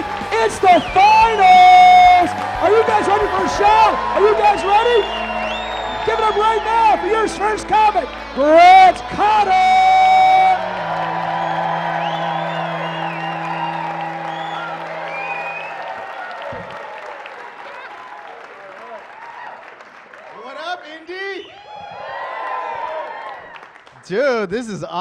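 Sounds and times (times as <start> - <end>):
whoops: 0.0 - 7.4, 8.8 - 19.7, 21.5 - 23.8
walk-on music: 0.0 - 16.6
audience applauding and cheering: 0.0 - 24.0
man calling out: 6.0 - 10.6.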